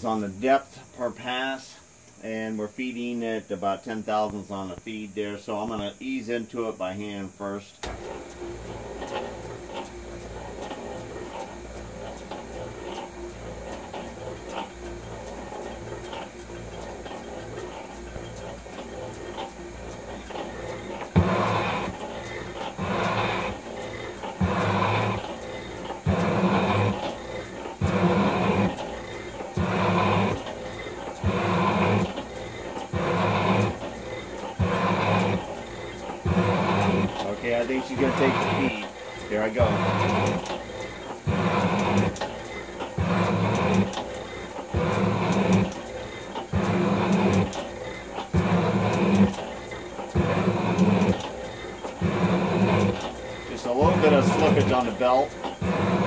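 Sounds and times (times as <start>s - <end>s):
drive belt slipping: 0.0s - 56.0s
metal shaper cutting iron: 7.8s - 56.0s.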